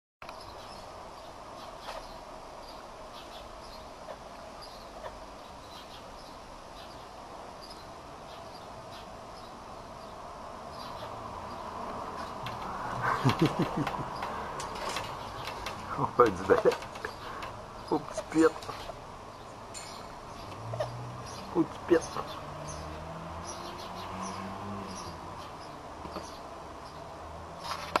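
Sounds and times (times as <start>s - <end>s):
outdoor background hum: 0.2s - 28.0s.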